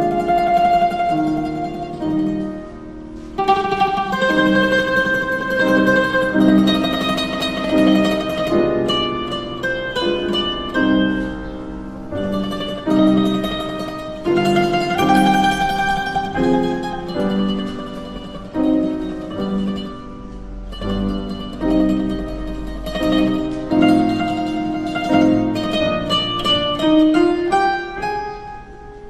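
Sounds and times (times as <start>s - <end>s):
mandolin plucked melody: 0.0s - 29.0s
piano chords: 0.0s - 29.0s.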